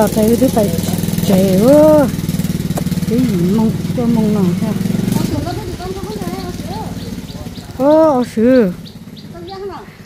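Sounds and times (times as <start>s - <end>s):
small motorcycle engine idling: 0.0s - 10.0s.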